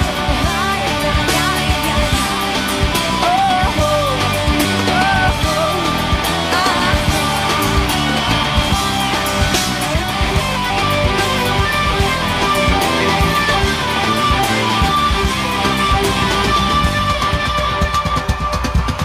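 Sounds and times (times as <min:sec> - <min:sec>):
electric guitar: 0:00.0 - 0:19.0
live rock band playing: 0:00.0 - 0:19.0.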